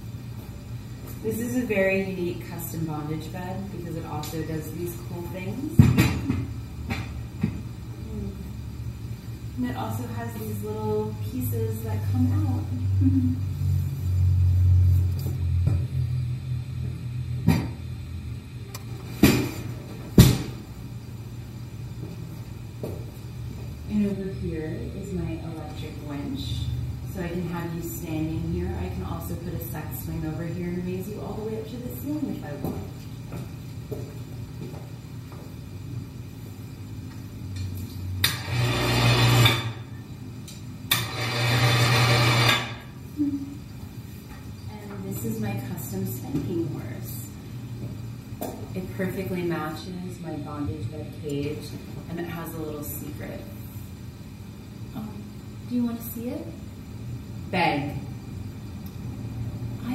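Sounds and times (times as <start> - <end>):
electric hoist motor humming: 0.0 - 44.1.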